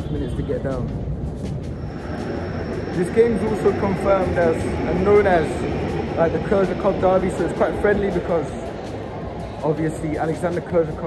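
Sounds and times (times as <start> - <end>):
low rumble and hiss: 0.0 - 11.0
thin high whine: 0.0 - 11.0.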